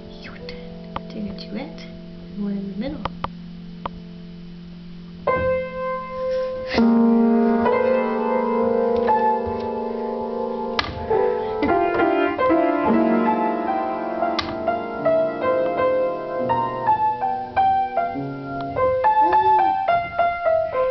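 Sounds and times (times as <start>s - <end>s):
upright piano playing slowly: 0.0s - 20.9s.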